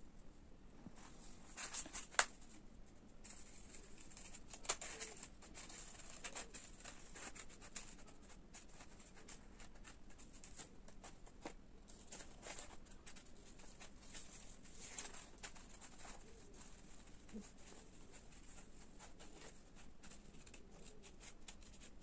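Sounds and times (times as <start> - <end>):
paper rustling: 1.0 - 2.6, 3.2 - 22.0
scissors snipping paper: 3.3 - 22.0.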